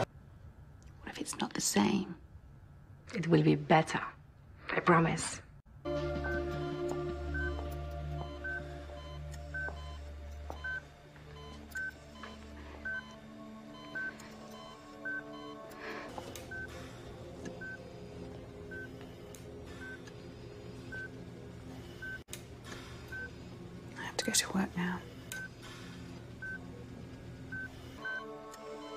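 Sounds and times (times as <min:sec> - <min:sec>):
low sustained music score: 0:05.8 - 0:22.2
hospital monitor beeping: 0:05.9 - 0:28.9.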